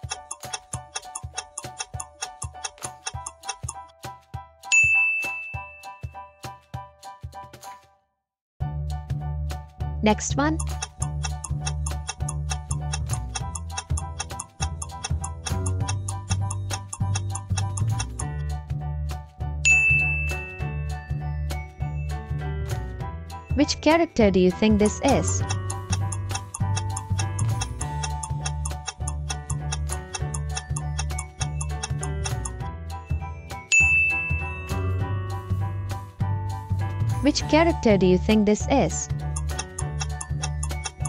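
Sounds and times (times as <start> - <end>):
countdown timer ticking: 0.0 - 3.9, 10.0 - 18.4, 23.5 - 32.8, 37.2 - 41.0
upbeat background music: 0.0 - 8.0, 8.6 - 41.0
bright ding: 4.7 - 6.2, 19.7 - 20.6, 33.7 - 34.9
bright chime: 33.7 - 35.0.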